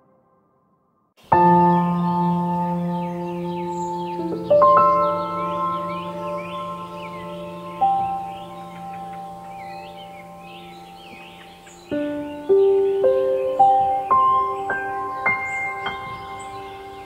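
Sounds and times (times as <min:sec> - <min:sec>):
ambient music of ringing notes: 0:01.2 - 0:17.0
birdsong chirps: 0:01.2 - 0:17.0.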